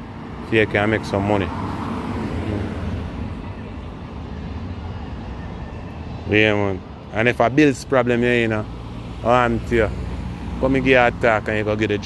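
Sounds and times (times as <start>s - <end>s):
low rumble of road noise: 0.0s - 12.0s.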